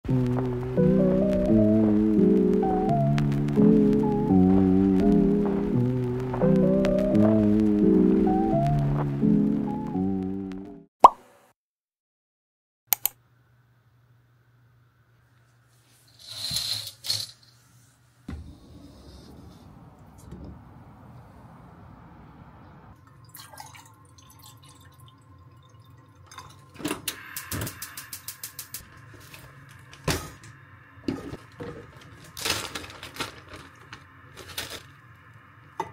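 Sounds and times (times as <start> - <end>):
background music: 0.1 - 10.9.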